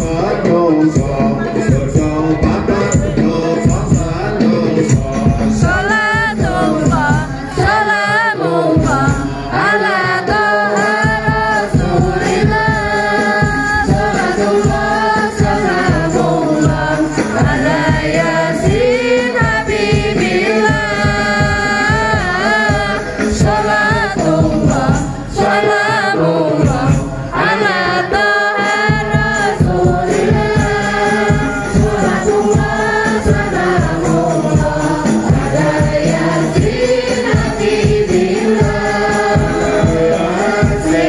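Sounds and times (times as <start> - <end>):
low drum beat: 0.0 - 7.9, 10.9 - 25.6, 28.8 - 41.0
person singing devotional song: 0.0 - 41.0.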